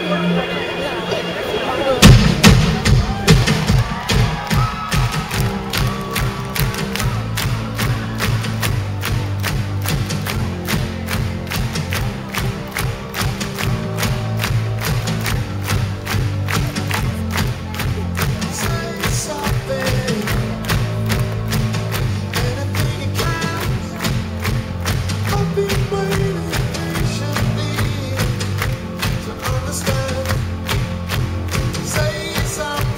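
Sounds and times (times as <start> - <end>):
bass guitar line: 0.0 - 32.9
keyboards: 0.0 - 32.9
audience clapping along: 2.0 - 32.9
drum kit: 2.0 - 32.9.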